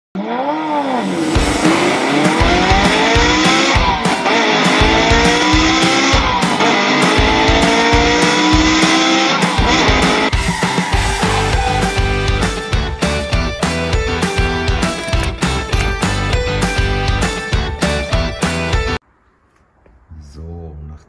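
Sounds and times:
racing car engine accelerating: 0:00.2 - 0:12.5
music with thumping beat: 0:01.3 - 0:19.0.

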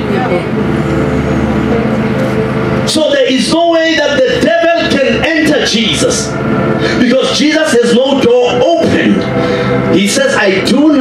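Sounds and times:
low droning hum: 0:00.0 - 0:11.0.

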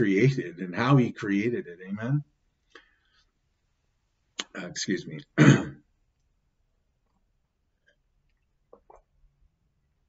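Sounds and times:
man clearing throat: 0:05.4 - 0:05.8.

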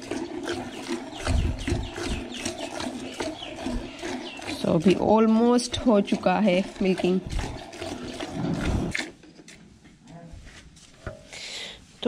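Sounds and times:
milk squirting into a pail: 0:00.0 - 0:09.6.

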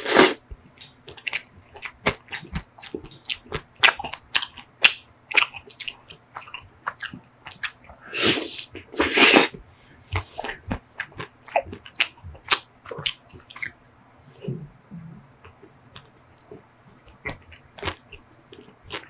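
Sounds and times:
wet chewing and lip smacks: 0:00.8 - 0:08.0.

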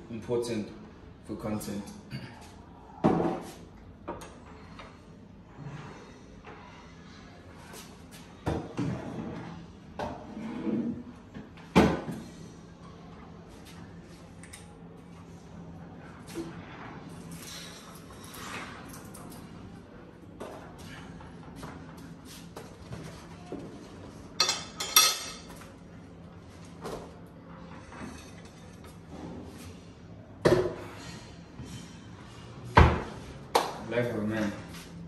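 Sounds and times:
plates and utensils clattering: 0:24.4 - 0:25.6.

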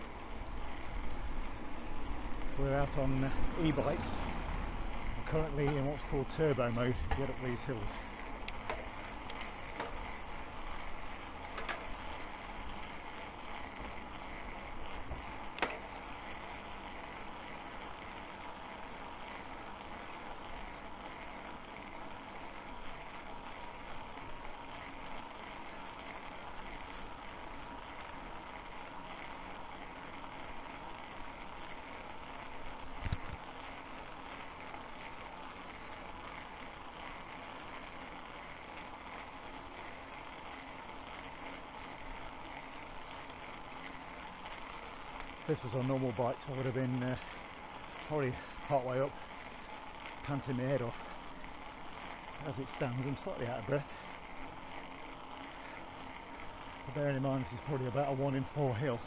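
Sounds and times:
faint motor whine: 0:00.0 - 0:59.0.

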